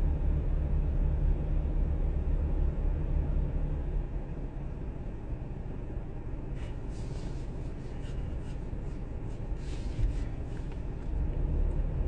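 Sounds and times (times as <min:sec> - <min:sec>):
low rumble in car cabin: 0:00.0 - 0:12.0.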